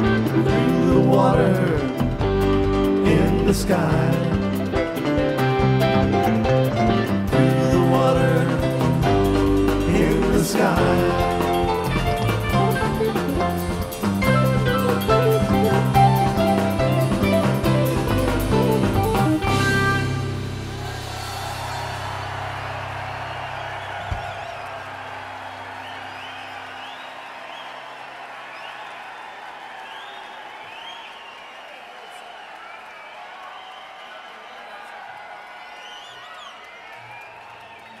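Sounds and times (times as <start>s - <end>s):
crowd cheering and clapping: 0.0s - 38.0s.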